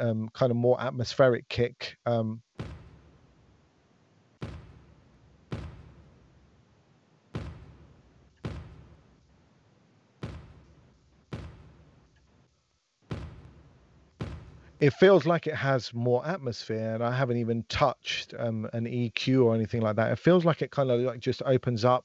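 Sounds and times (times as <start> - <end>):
kick drum hits: 2.6 - 3.2, 4.4 - 6.2, 7.3 - 9.2, 10.2 - 12.0, 13.1 - 14.8.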